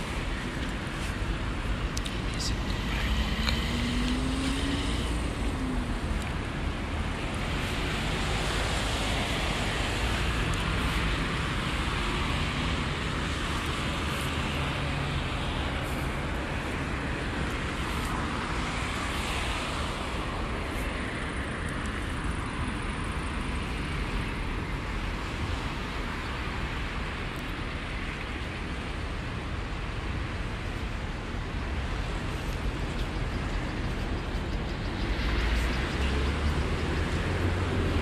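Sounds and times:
road traffic rumble: 0.0s - 38.0s.

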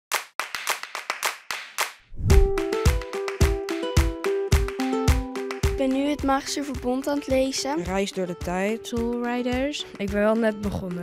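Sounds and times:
sharp slaps: 0.1s - 5.8s.

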